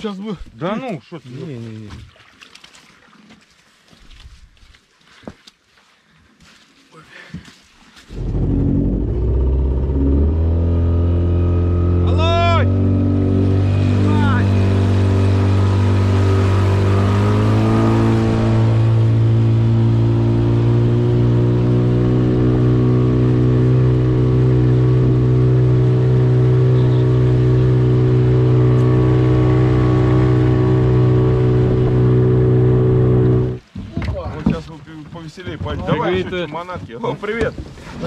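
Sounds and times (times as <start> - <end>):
outboard motor running: 8.1 - 34.6.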